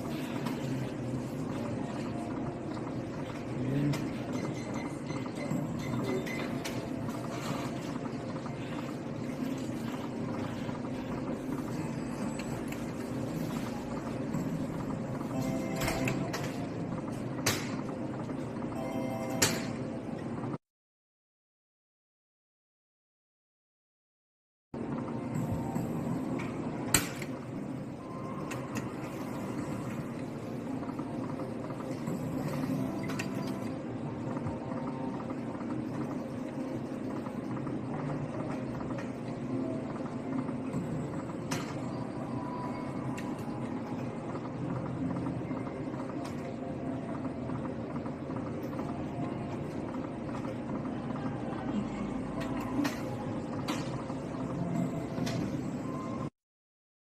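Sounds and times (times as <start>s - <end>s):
slot machine sound effects: 18.7s - 19.9s.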